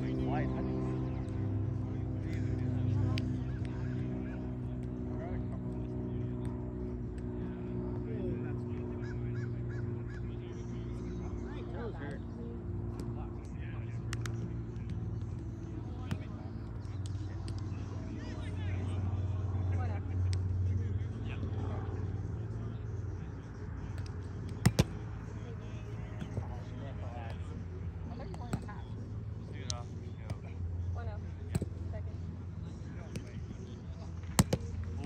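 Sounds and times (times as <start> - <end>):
faint voices: 0.0 - 35.0
ball striking net: 24.6 - 25.0, 31.5 - 31.8, 34.3 - 34.9.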